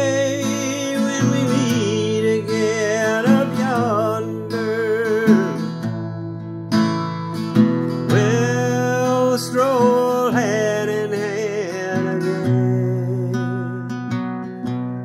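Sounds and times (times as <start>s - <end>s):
man singing wordless notes: 0.0s - 5.8s, 8.1s - 14.0s
acoustic guitar strumming: 0.0s - 15.0s.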